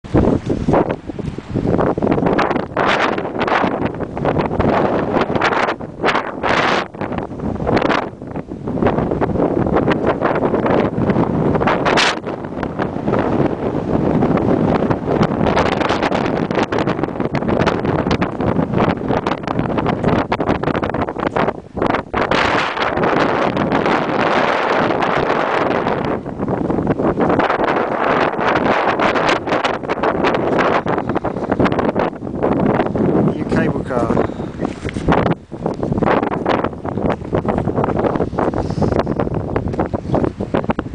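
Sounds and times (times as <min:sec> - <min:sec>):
wind buffeting microphone: 0:00.0 - 0:40.9.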